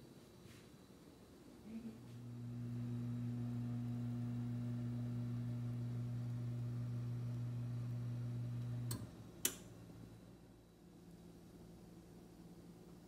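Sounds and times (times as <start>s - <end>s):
low electrical hum: 0.0s - 13.0s
appliance switch click: 8.6s - 9.7s.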